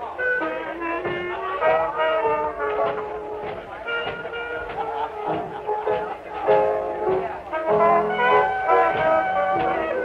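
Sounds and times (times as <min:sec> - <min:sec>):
drums: 0:00.0 - 0:10.0
piano: 0:00.0 - 0:10.0
wind instrument melody: 0:00.0 - 0:10.0.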